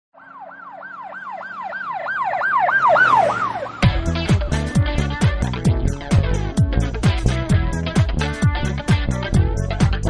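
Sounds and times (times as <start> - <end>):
fast-warbling siren: 0.2 - 3.9
music with loud hit: 3.8 - 10.0.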